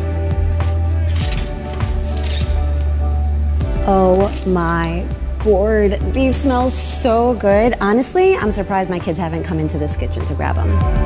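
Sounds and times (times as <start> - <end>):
parchment paper rustling: 0.0 - 3.1
background music: 0.0 - 11.0.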